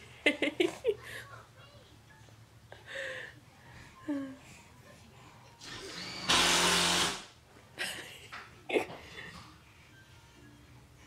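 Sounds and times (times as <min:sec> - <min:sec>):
power drill running: 0:05.6 - 0:07.3.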